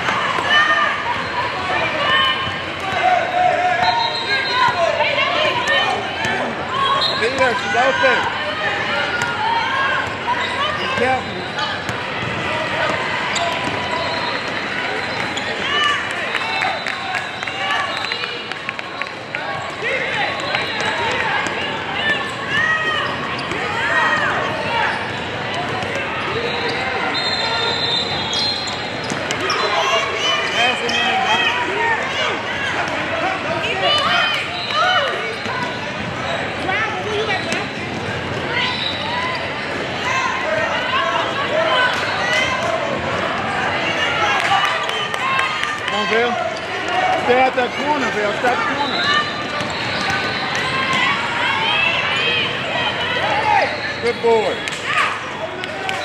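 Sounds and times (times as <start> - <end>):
echoing hubbub of voices: 0.0 - 56.0
sneaker squeaks: 2.1 - 8.2, 9.1 - 16.0, 19.6 - 31.5, 33.8 - 40.2, 46.5 - 55.1.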